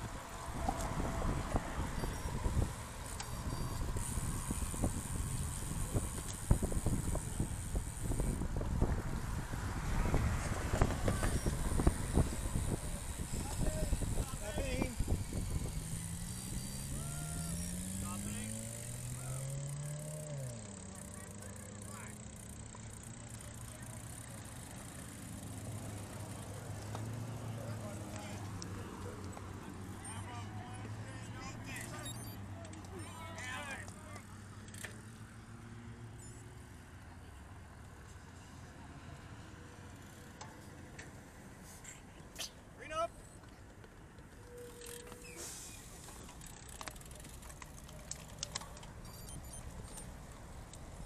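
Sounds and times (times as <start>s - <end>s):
wind and road noise: 0.0s - 51.0s
vehicle engine accelerating: 15.0s - 32.4s.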